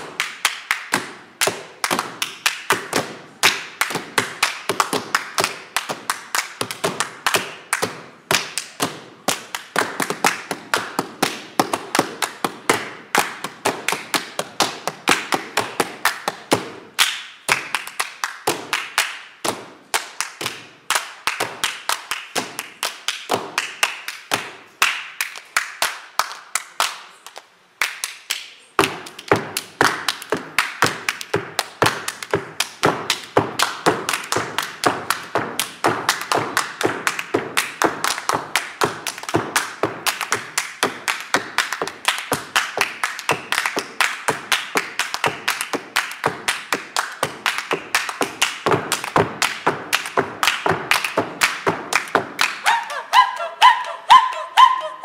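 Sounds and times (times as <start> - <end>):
hand claps: 0.0 - 54.8
tap shoes striking stage floor: 28.8 - 52.6.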